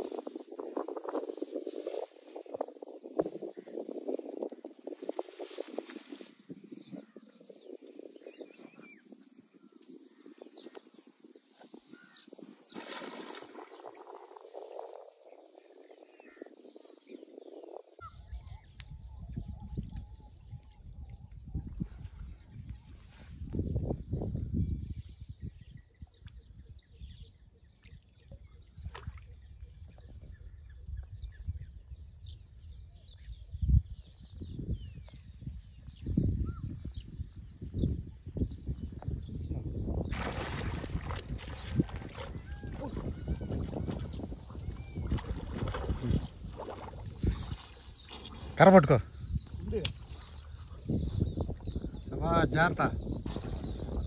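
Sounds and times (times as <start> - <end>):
wind rumble on microphone: 0.0 - 54.0
faint bird chirps: 5.3 - 54.0
water movement: 12.5 - 16.2, 40.0 - 50.9.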